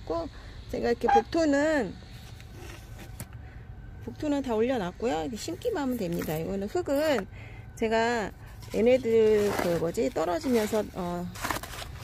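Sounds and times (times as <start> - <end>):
low steady background rumble: 0.0 - 12.0.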